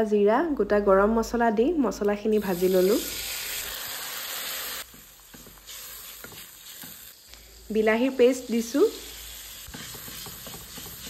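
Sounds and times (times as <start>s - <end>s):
food sizzling in hot oil: 2.2s - 11.0s.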